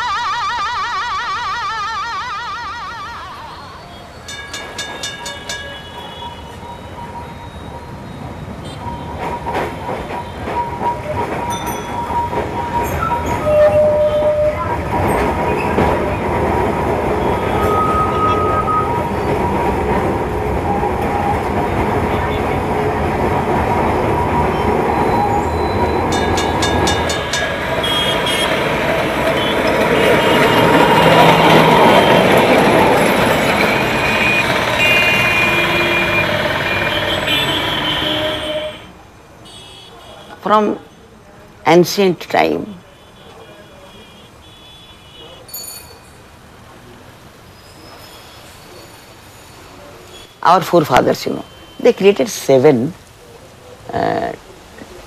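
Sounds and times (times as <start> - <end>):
brief tones: 0.0 - 9.6, 33.2 - 38.9
tram running on rails: 2.0 - 44.5, 45.2 - 55.0.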